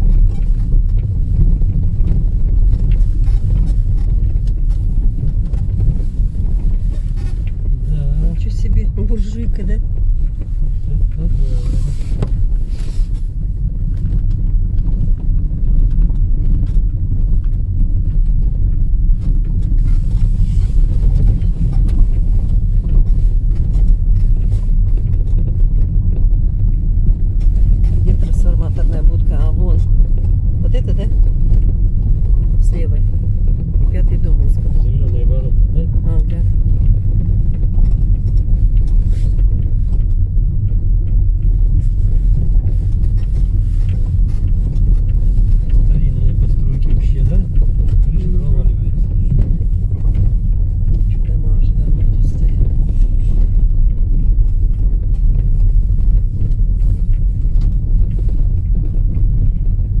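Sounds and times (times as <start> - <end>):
car driving on gravel road: 0.0 - 60.0.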